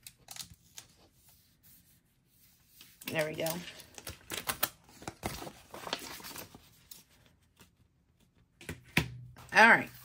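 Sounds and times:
paper stickers rustling: 0:02.4 - 0:07.8.

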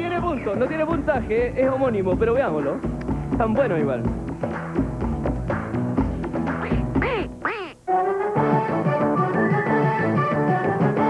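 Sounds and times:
game-show music with drum beat: 0:00.0 - 0:11.0.

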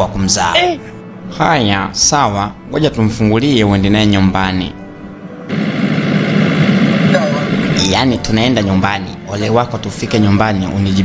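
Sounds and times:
car engine: 0:05.5 - 0:07.8.

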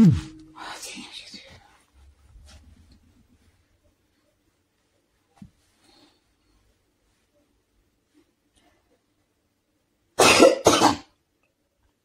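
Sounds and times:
woman coughing: 0:10.2 - 0:11.1.

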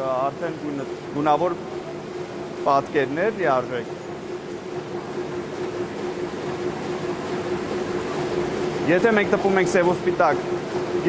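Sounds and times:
printing press hum and rumble: 0:00.0 - 0:11.0.

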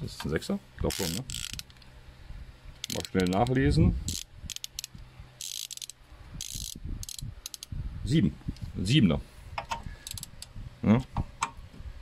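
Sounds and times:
sharp metallic clicks of hand tool: 0:02.8 - 0:07.7.

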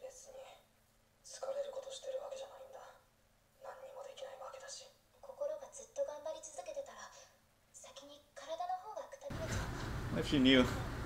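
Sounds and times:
young woman speaking: 0:03.6 - 0:09.7.

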